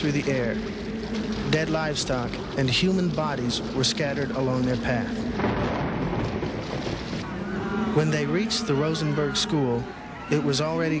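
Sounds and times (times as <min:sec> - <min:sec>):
low rumble: 0:00.0 - 0:10.0
heavy rain: 0:00.0 - 0:11.0.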